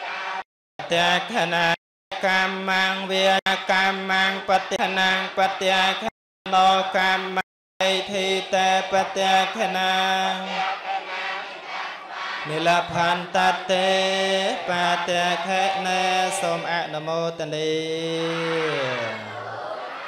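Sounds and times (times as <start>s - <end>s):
monk chanting through microphone: 0.8s - 10.6s, 12.5s - 19.4s.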